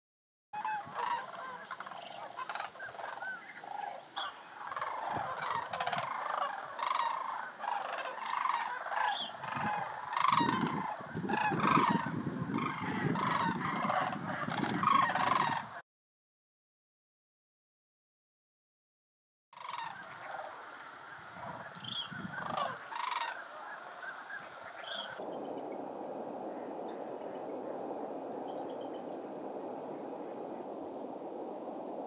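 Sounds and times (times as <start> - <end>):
cranes calling: 0.6 - 15.8, 19.6 - 32.0.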